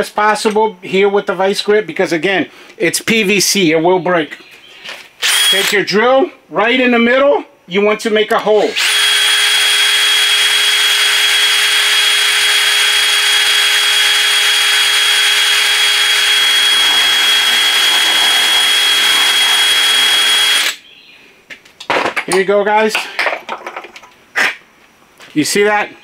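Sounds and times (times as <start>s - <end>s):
cordless drill whining: 5.2s - 5.8s, 8.6s - 20.8s.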